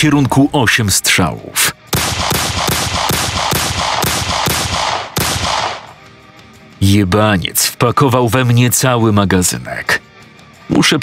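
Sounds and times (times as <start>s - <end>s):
soft background music: 0.0s - 11.0s
rapid gunshots with reverb: 1.9s - 6.0s.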